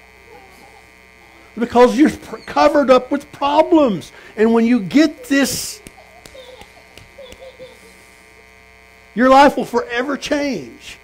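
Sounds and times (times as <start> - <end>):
buzzy mains hum: 0.0 - 11.0.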